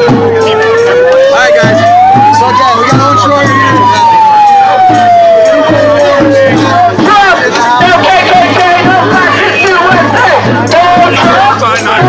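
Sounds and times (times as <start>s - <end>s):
siren wailing: 0.0s - 7.4s.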